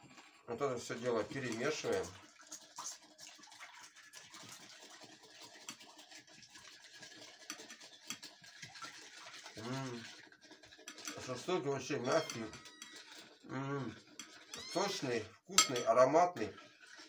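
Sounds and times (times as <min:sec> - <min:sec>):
spoon scraping ceramic bowl: 0:10.8 - 0:13.4, 0:14.0 - 0:16.0.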